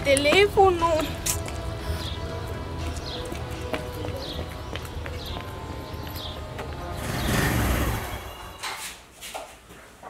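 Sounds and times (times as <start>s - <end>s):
footsteps on pavement: 0.0s - 7.0s
background music of held tones: 0.0s - 9.2s.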